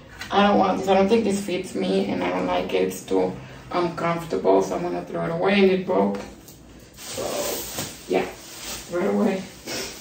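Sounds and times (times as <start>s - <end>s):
plastic garbage bag rustling: 6.9s - 10.0s.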